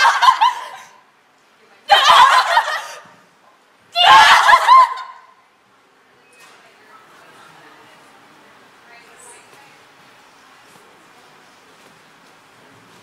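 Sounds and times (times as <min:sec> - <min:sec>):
women laughing: 0:00.0 - 0:01.0, 0:01.9 - 0:03.2, 0:04.0 - 0:05.3.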